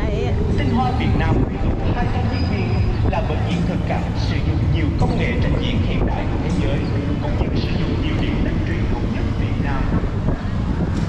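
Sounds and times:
indistinct voices: 0.0s - 11.0s
moving vehicle rumble: 0.0s - 11.0s
wind noise on microphone: 0.0s - 11.0s.

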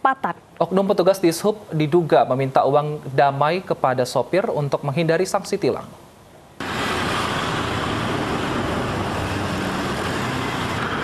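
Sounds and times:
road traffic noise: 6.6s - 11.0s.

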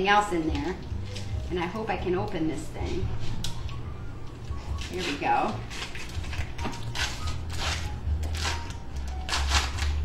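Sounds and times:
background music: 0.0s - 10.0s
foil wrapper crinkling and tearing: 4.7s - 10.0s.

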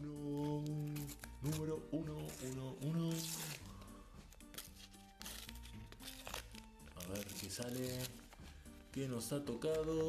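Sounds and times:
quiet background music: 0.0s - 10.0s
paper packet tearing: 0.3s - 10.0s.

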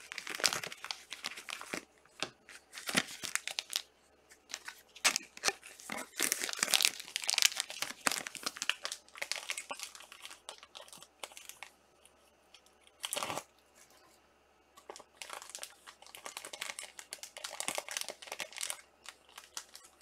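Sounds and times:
plastic card sleeves crinkling: 0.0s - 12.2s, 14.8s - 20.0s.

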